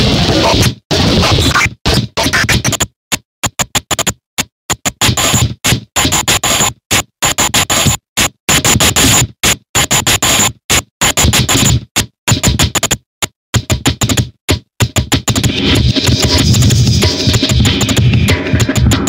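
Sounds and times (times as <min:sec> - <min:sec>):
distorted electronic noise bursts: 0:00.0 - 0:02.8.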